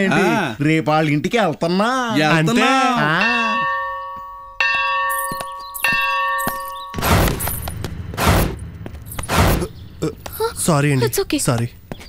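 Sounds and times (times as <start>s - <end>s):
temple bell ringing: 2.5s - 7.0s.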